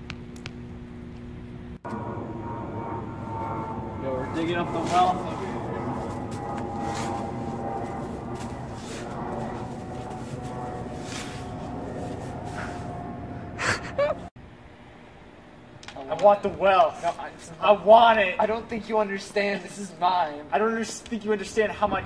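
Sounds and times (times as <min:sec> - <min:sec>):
steady background hum: 0:00.0 - 0:22.0
snow shovel scraping snow: 0:04.3 - 0:13.2.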